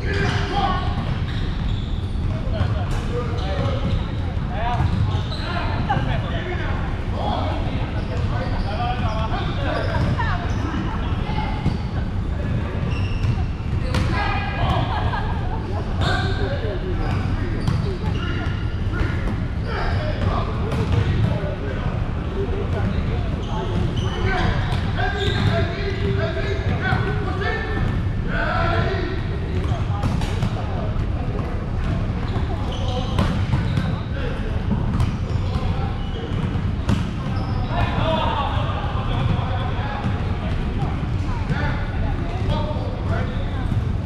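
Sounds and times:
players calling and talking: 0.0s - 44.0s.

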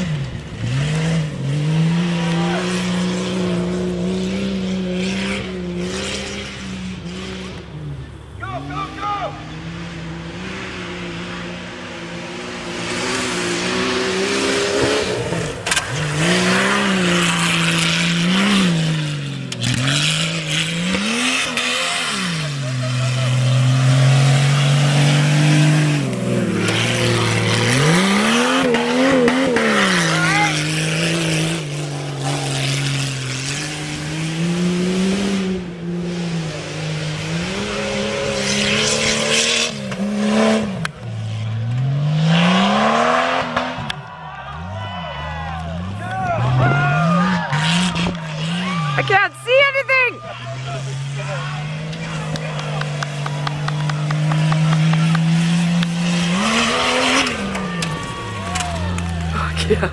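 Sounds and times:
engine revving: 0.0s - 59.9s.

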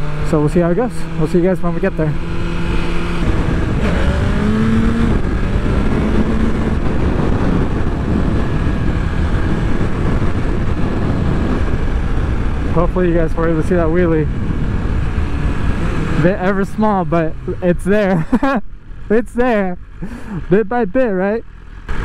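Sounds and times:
motorcycle engine accelerating: 0.0s - 22.0s
wind rushing over microphone: 0.0s - 22.0s.

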